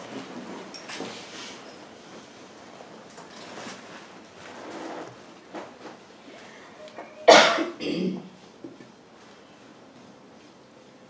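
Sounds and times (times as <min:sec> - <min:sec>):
person coughing: 0:07.1 - 0:08.3.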